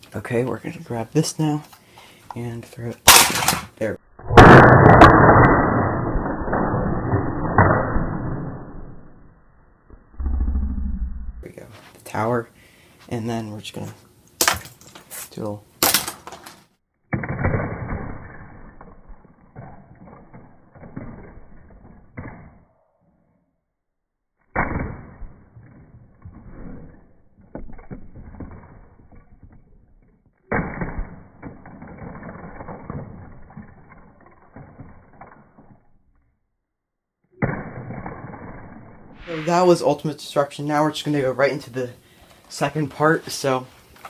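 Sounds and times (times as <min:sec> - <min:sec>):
slowed plastic bricks crashing: 0:24.6 - 0:36.1.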